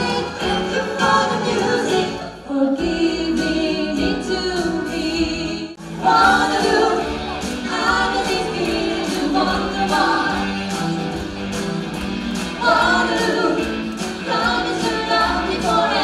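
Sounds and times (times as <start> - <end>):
women singing together: 0.0 - 10.8, 12.5 - 16.0
keyboard: 0.0 - 16.0.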